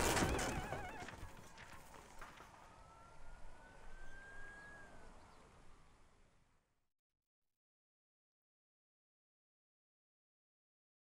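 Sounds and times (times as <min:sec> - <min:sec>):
thin whistle-like rising tone: 0:02.7 - 0:05.1.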